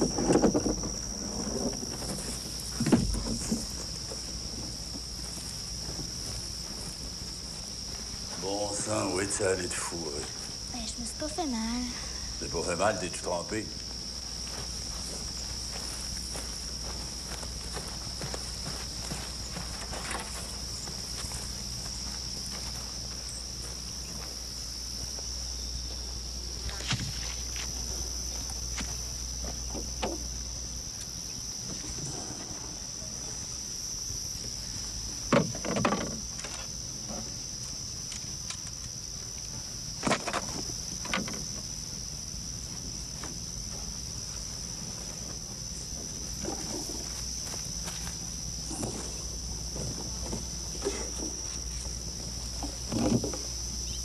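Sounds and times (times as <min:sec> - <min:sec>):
knocks and thumps: 0:00.0 - 0:05.1, 0:35.3 - 0:37.3, 0:52.5 - 0:53.5
crickets chirping: 0:00.0 - 0:54.0.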